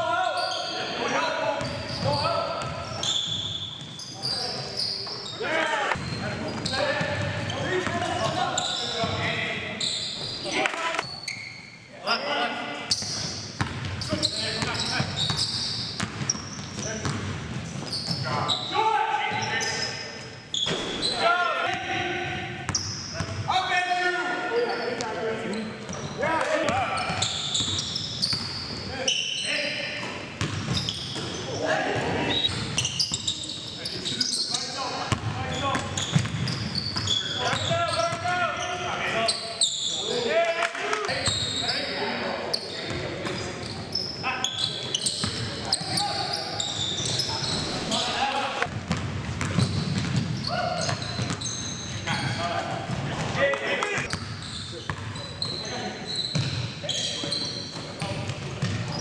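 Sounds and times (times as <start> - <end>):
basketball bouncing on hardwood: 30.4 - 30.8, 48.7 - 50.3.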